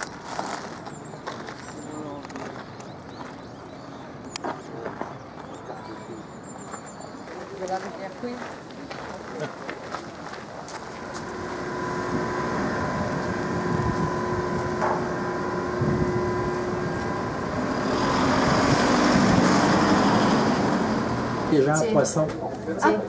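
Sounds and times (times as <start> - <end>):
road noise: 0.0 - 23.0
motor vehicle hum: 10.6 - 22.8.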